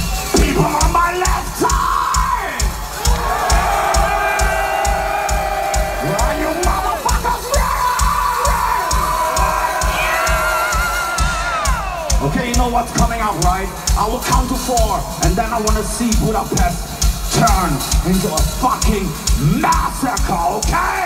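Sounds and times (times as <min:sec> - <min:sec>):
crowd cheering and whooping: 0:00.0 - 0:12.2
thudding drum beat: 0:00.0 - 0:21.0.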